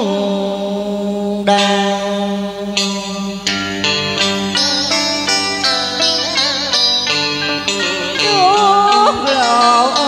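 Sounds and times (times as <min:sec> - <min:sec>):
karaoke backing track: 0:00.0 - 0:10.0.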